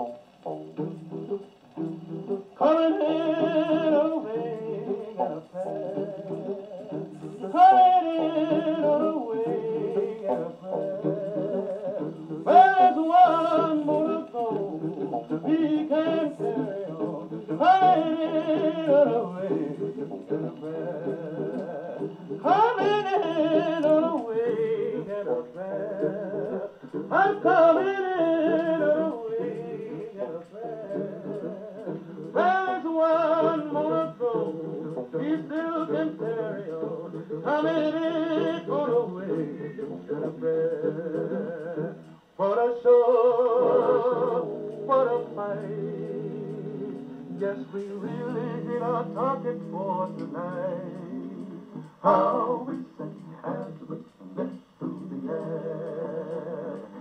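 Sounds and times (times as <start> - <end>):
male quartet singing on phonograph: 0.0 - 57.0.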